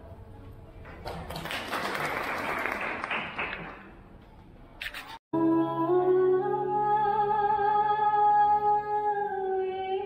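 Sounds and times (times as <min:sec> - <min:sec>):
audience clapping: 0:00.9 - 0:04.1.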